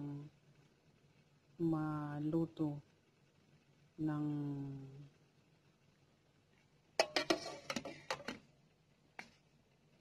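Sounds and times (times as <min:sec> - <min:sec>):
metal lid and pan clattering: 0:07.0 - 0:08.4.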